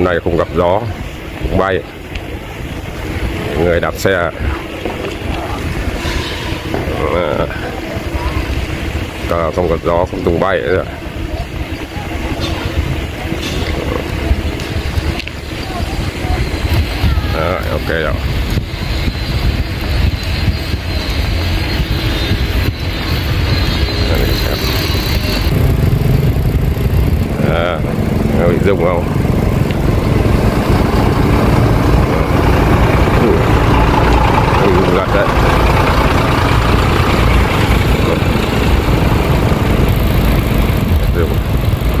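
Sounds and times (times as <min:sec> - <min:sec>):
motorbike engine rumbling: 0:00.0 - 0:42.0
wind buffeting microphone: 0:00.0 - 0:42.0.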